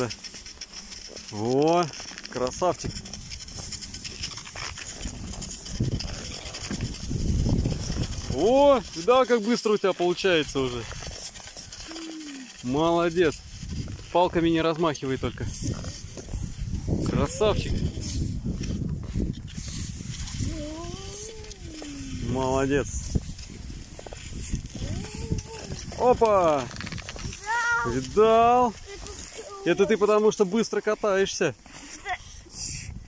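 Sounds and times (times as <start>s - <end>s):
skis sliding on packed snow: 0.0s - 33.0s
drawn-out whining voice: 11.8s - 12.6s.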